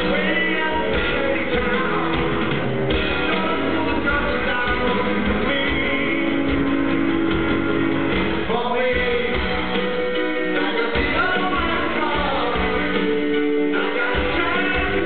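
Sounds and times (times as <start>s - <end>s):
man singing: 0.0s - 7.3s, 8.4s - 15.0s
bass: 0.0s - 15.0s
drums: 0.0s - 15.0s
grand piano: 0.0s - 15.0s.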